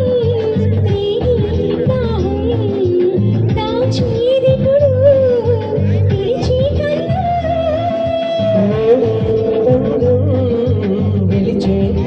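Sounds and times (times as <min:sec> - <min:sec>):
amplified backing music: 0:00.0 - 0:12.0
woman singing into a microphone: 0:00.0 - 0:12.0.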